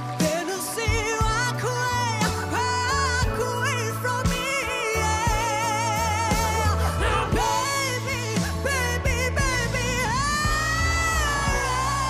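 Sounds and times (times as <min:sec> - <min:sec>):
live band playing soul ballad: 0:00.0 - 0:12.0.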